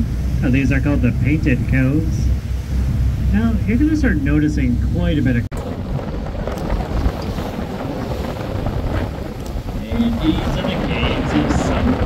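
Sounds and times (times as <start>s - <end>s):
boat rumbling through water: 0.0s - 12.0s
wind buffeting microphone: 0.0s - 12.0s.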